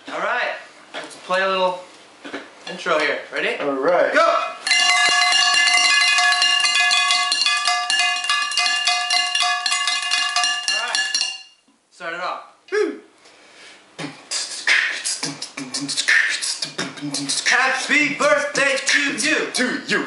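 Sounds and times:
drumsticks rolling on cooking pots: 4.7 - 11.6.

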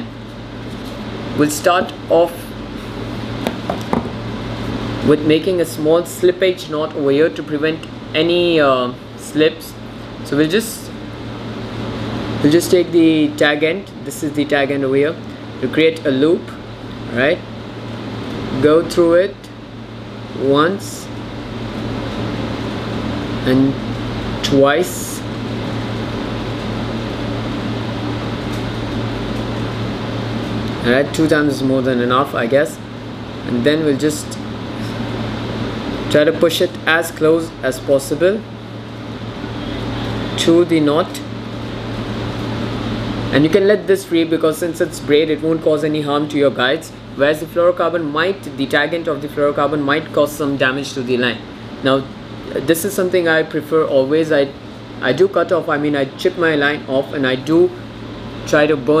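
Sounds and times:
steady room hum: 0.0 - 59.0.

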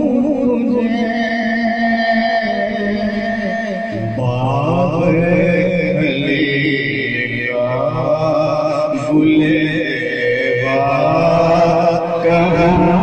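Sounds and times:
man singing over loudspeaker: 0.0 - 13.0.

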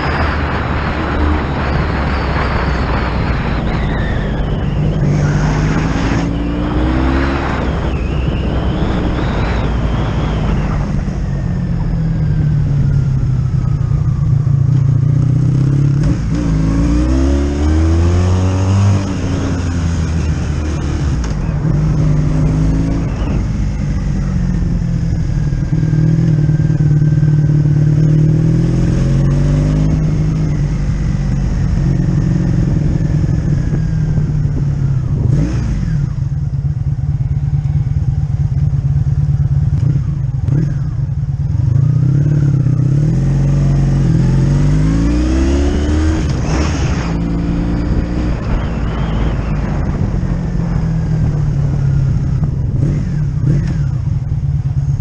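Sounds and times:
motorcycle engine accelerating: 0.0 - 55.0.

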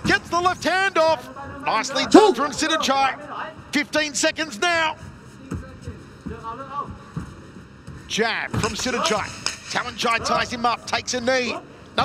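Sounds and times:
faint shout: 2.0 - 2.6.

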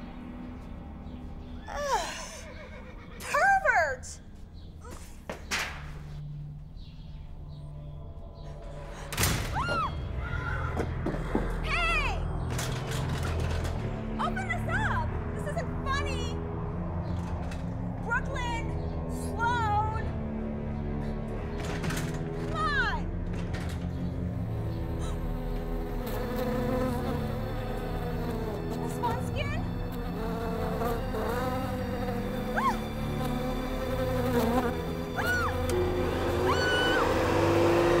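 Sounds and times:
bees buzzing: 24.2 - 38.0
high-pitched rising and falling cries: 35.2 - 37.7.

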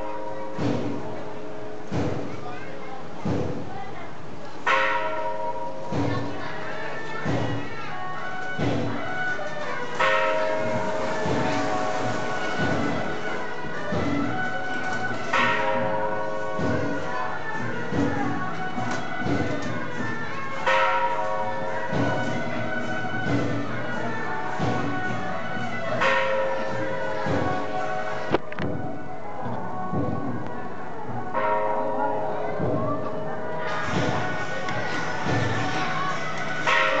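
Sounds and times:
crowd: 0.0 - 37.0
gongs and bells ringing: 4.6 - 28.4, 31.3 - 37.0.

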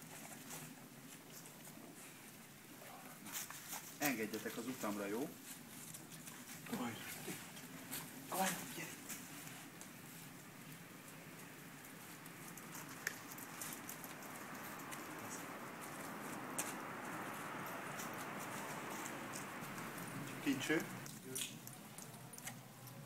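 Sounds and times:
dogs rustling in leaves: 3.2 - 21.1.

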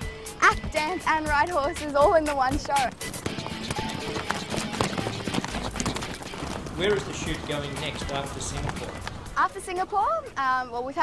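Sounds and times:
background music: 0.0 - 11.0
horse hoofbeats: 0.4 - 10.4.

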